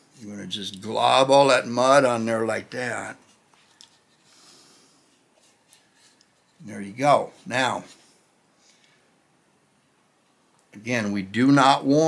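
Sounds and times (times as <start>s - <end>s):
faint soft hiss: 0.0s - 12.0s.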